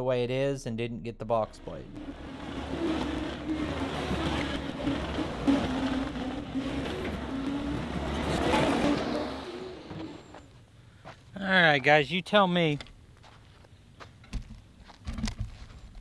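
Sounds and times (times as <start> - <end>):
diesel engine of track loader: 1.5 - 10.6.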